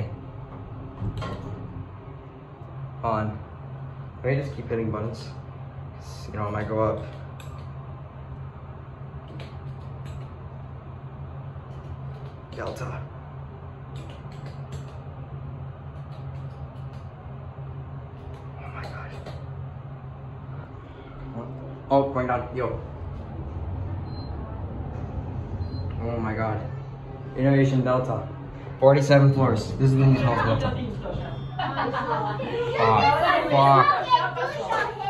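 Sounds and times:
elevator hum: 0:00.0 - 0:35.0.

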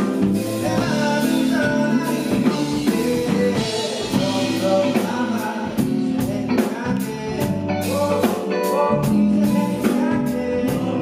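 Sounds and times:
band instruments playing: 0:00.0 - 0:11.0
drum kit steady beat: 0:00.0 - 0:11.0
man singing into microphone: 0:00.0 - 0:11.0.

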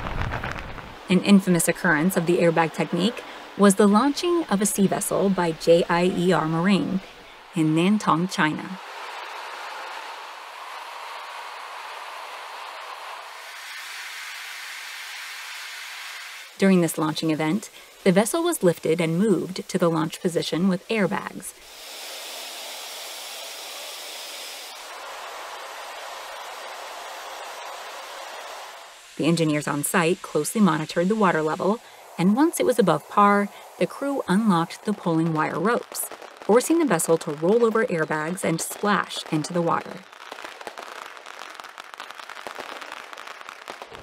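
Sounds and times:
firecrackers popping: 0:00.0 - 0:44.0
compressed air hissing through hose: 0:08.8 - 0:16.6, 0:21.5 - 0:33.9.

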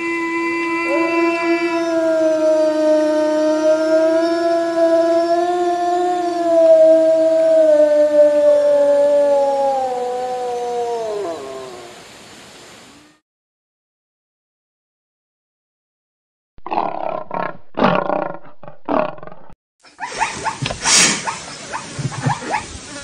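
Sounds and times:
wolf howling: 0:00.0 - 0:12.0.

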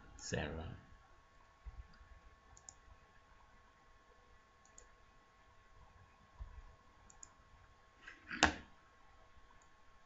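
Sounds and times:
computer mouse clicks: 0:01.9 - 0:02.8, 0:04.6 - 0:04.9, 0:07.1 - 0:07.4.

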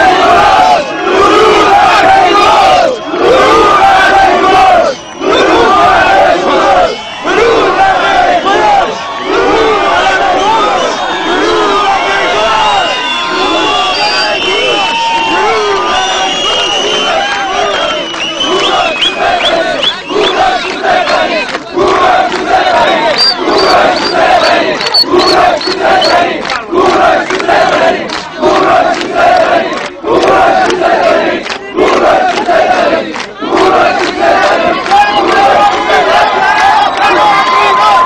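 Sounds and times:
crowd chanting in unison: 0:00.0 - 0:38.0
crowd shouting: 0:00.0 - 0:38.0.

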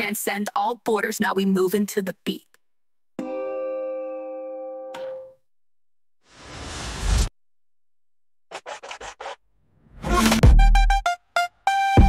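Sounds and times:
record scratching: 0:08.5 - 0:09.4
bhangra hip-hop music: 0:10.0 - 0:12.0.

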